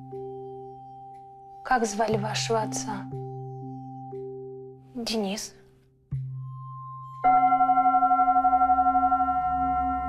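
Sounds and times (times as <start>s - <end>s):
singing bowl ringing: 6.5s - 10.0s.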